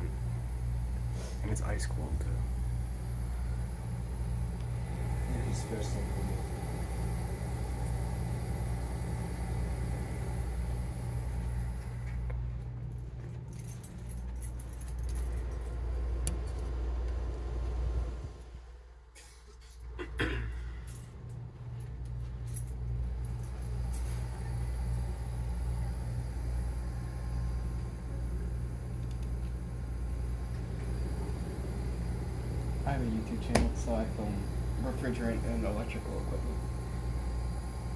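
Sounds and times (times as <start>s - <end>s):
refrigerant hissing: 0.0s - 12.1s, 23.6s - 37.9s
compressor hum: 0.0s - 37.9s.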